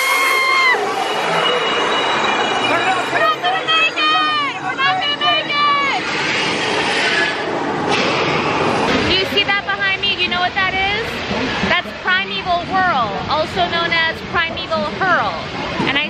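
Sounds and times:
high sliding voice-like calls: 0.0 - 7.6
rushing noise: 0.0 - 16.0.

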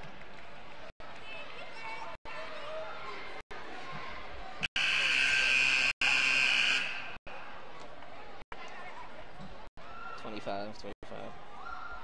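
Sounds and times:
crowd noise: 0.0 - 12.0
arena horn blast: 4.7 - 7.2.

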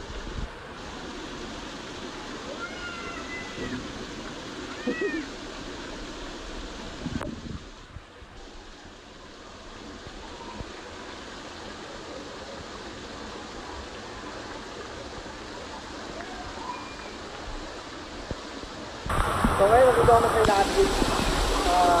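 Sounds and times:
fountain water spraying and splashing: 0.0 - 22.0
child squealing: 2.5 - 3.8, 4.7 - 5.3.

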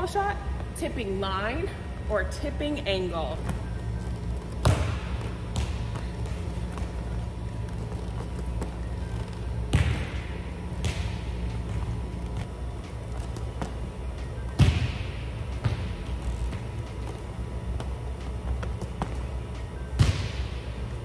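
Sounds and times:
steady low hum: 0.0 - 21.0
volleyball thuds on gym floor: 4.6 - 6.4, 9.7 - 11.2.

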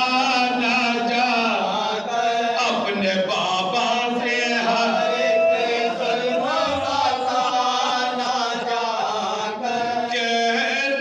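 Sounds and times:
men chanting an elegy: 0.0 - 11.0.

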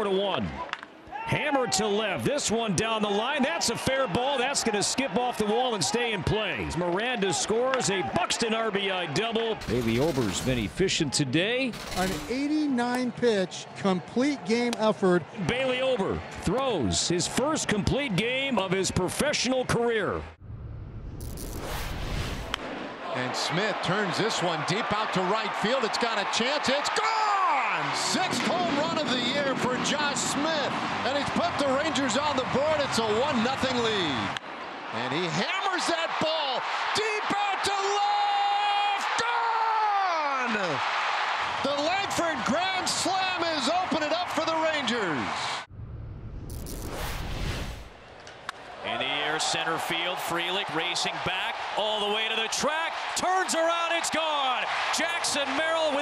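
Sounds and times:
man speaking: 9.6 - 16.2
low rumble: 20.4 - 22.6, 45.7 - 48.0
transition whoosh: 20.4 - 22.7, 45.7 - 48.1.

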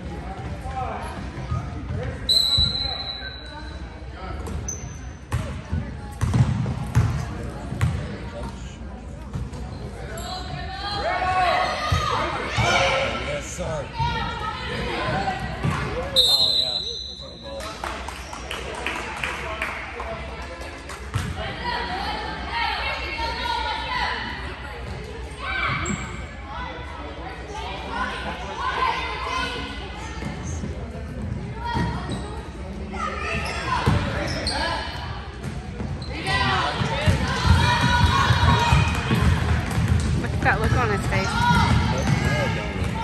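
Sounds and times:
referee's whistle blast: 2.3 - 3.5, 16.2 - 17.3.

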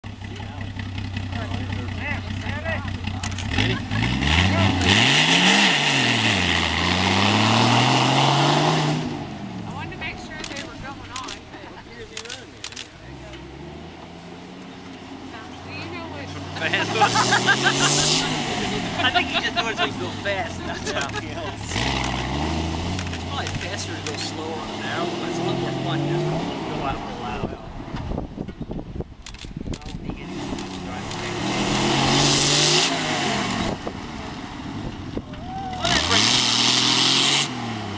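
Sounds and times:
engine idling and revving: 0.0 - 37.9.

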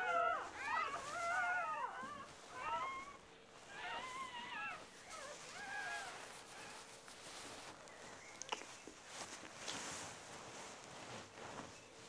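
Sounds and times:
fox cubs whimpering: 0.0 - 7.4.

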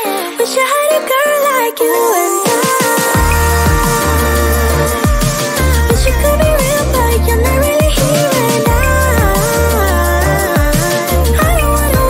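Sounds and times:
music with pulsing bass: 2.8 - 12.0.

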